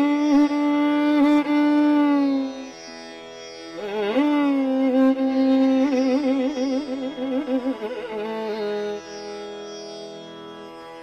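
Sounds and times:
bowed violin notes: 0.0 - 11.0.

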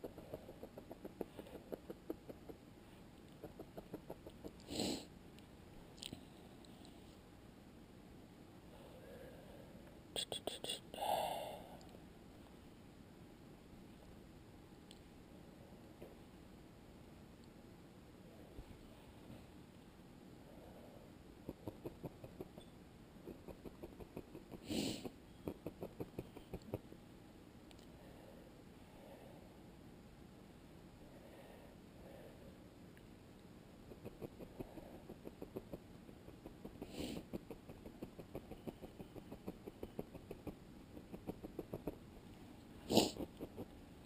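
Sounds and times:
sharp snort: 4.6 - 5.1, 24.4 - 25.1, 36.8 - 37.4, 42.8 - 43.4
felting needle jabbing wool: 33.9 - 42.0.

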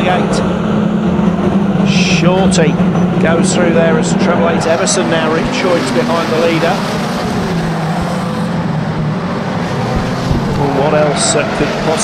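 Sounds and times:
race car engines: 0.0 - 12.0.

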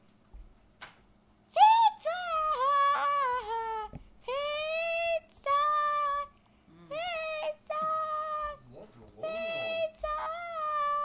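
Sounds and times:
child singing high notes: 1.6 - 6.3, 9.2 - 11.0.

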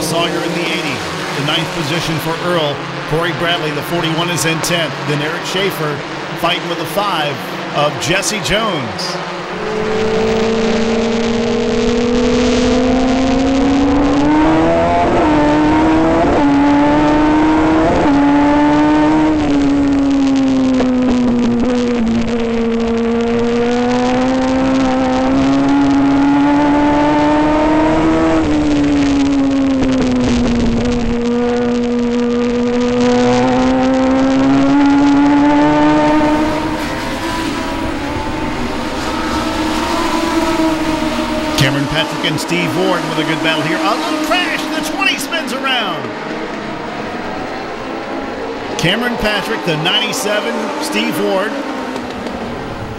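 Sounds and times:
race car engine revving: 0.0 - 52.9.

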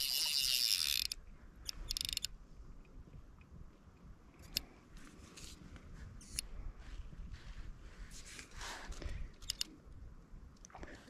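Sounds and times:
fly reel drag buzzing: 0.0 - 1.2.

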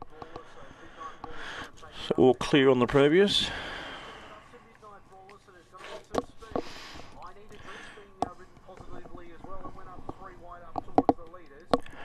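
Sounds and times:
faint voices talking: 0.0 - 12.0.

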